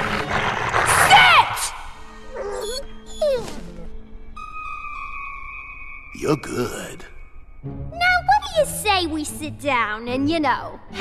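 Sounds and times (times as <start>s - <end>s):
cartoon hyenas whining: 0.8s - 5.2s.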